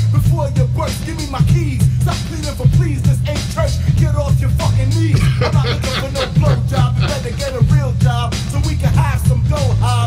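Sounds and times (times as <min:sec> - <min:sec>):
man rapping over a beat: 0:00.0 - 0:10.0
heavy bass line: 0:04.0 - 0:08.2.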